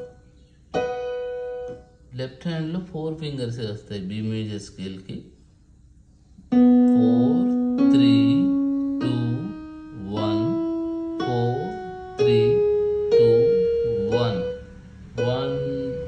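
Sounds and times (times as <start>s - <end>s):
keyboard piano notes rising scale: 0.0s - 2.2s, 6.5s - 16.0s.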